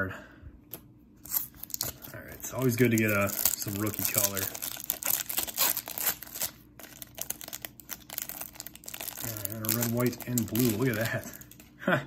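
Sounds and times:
plastic wrapper crinkling and tearing: 0:01.2 - 0:11.8.

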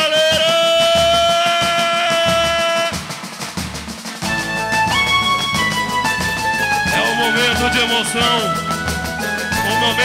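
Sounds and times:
band music with held note: 0:00.0 - 0:10.0
steady drumming: 0:00.0 - 0:10.0.

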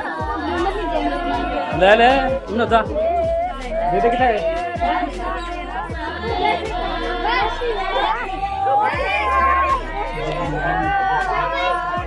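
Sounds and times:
music: 0:00.0 - 0:12.0
people chattering: 0:00.0 - 0:12.0.

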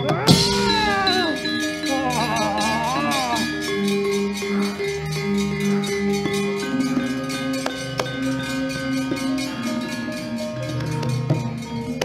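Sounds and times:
gamelan metallophones and gongs: 0:00.0 - 0:12.0.

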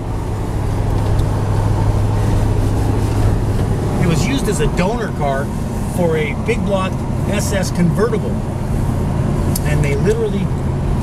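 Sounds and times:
car engine hum: 0:00.0 - 0:11.0
road noise: 0:00.0 - 0:11.0.

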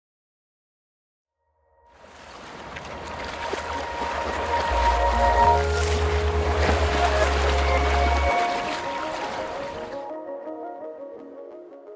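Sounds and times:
water splashing: 0:02.0 - 0:10.0
music with held notes: 0:03.4 - 0:11.9.

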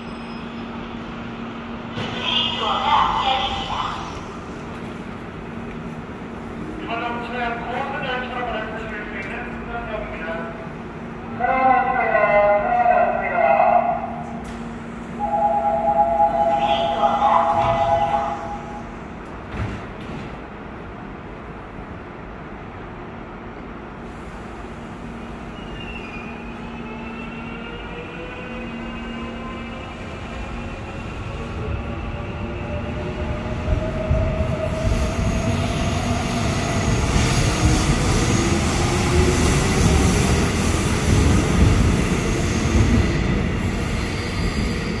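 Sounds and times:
train wheel noise: 0:14.2 - 0:20.7
two-tone signal: 0:15.2 - 0:18.4.

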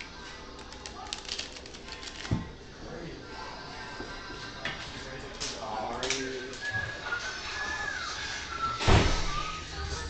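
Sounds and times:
thump: 0:08.8 - 0:09.3.

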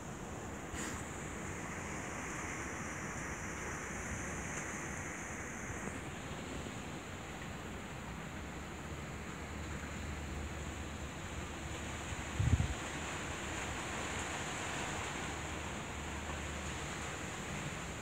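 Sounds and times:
outdoor background hiss: 0:00.0 - 0:18.0
wind on microphone: 0:12.2 - 0:12.9.

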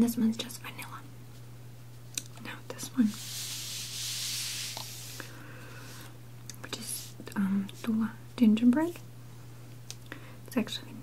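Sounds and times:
plate sliding on tablecloth: 0:03.0 - 0:05.3.

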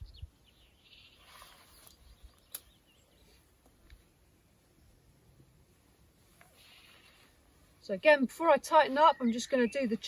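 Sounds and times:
faint bird chirps: 0:00.0 - 0:05.3
brief clicks: 0:01.8 - 0:02.8.

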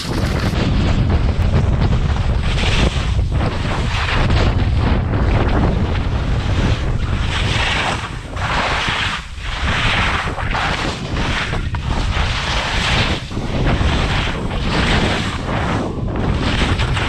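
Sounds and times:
skis scraping on snow: 0:00.0 - 0:17.0
wind buffeting microphone: 0:00.0 - 0:17.0.

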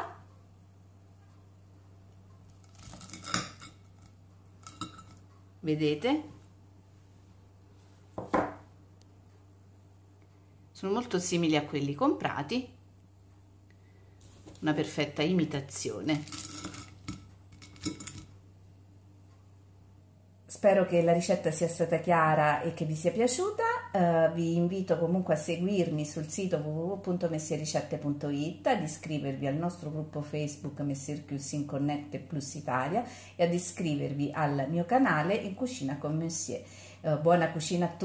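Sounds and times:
low steady hum: 0:00.0 - 0:38.0.

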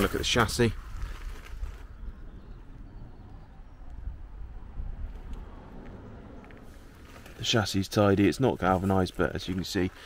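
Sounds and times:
low uneven rumble: 0:00.0 - 0:10.0.

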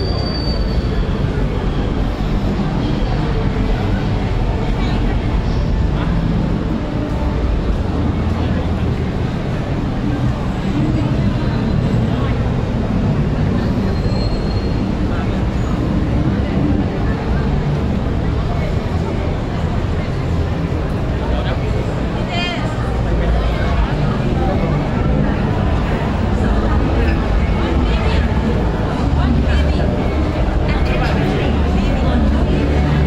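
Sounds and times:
crowd voices: 0:00.0 - 0:33.0
metro train rumbling: 0:00.0 - 0:33.0.

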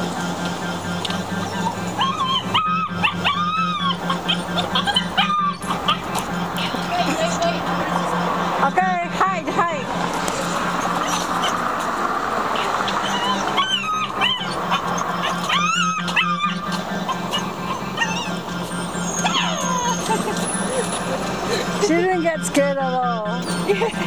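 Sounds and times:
steady background noise: 0:00.0 - 0:24.0
puppy whining: 0:01.4 - 0:07.5, 0:12.5 - 0:21.7.

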